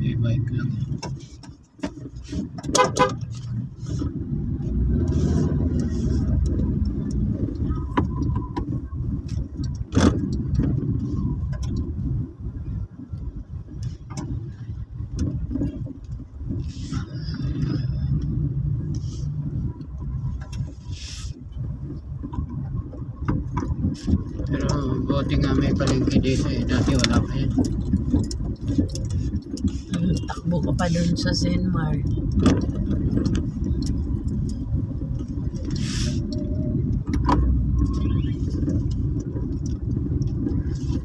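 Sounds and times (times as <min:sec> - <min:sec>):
car engine and road noise: 0:00.0 - 0:41.0.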